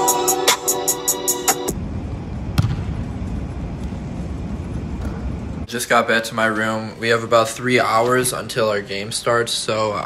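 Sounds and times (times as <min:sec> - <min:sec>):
low room rumble: 0:01.7 - 0:10.0
basketball bouncing on hardwood floor: 0:02.6 - 0:02.8.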